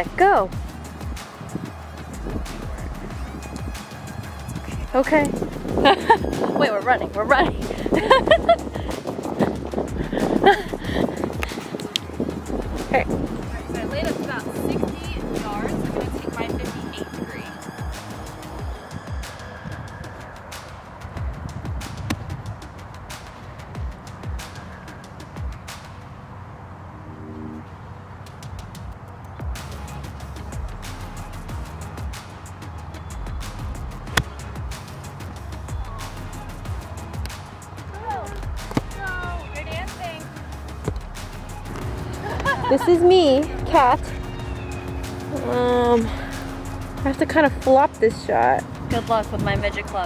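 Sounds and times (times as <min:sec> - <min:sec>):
background music: 0:00.0 - 0:26.5, 0:27.1 - 0:50.0
low rumble: 0:04.4 - 0:08.9, 0:09.5 - 0:14.0, 0:40.5 - 0:50.0
golf club striking ball: 0:34.1 - 0:34.4.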